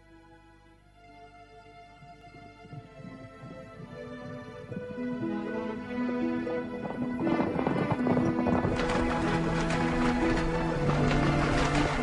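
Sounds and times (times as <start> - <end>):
film music with held notes: 0.0 - 12.0
horses hooves galloping: 6.8 - 12.0.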